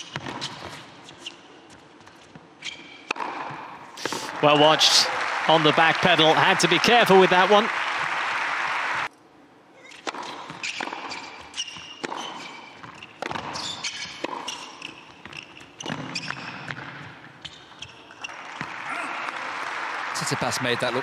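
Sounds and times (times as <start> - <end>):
tennis ball bouncing: 0.0 - 0.8, 3.0 - 4.4, 9.9 - 17.3
shoes squeaking on court: 0.0 - 4.3, 9.8 - 18.7
tennis racquet striking ball: 3.0 - 4.4, 9.9 - 17.1
crowd applause: 4.0 - 9.1, 18.3 - 21.0.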